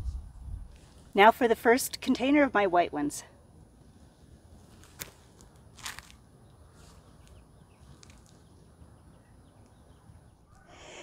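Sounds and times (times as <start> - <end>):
faint rustles and scrapes: 0.0 - 1.2, 3.9 - 8.5.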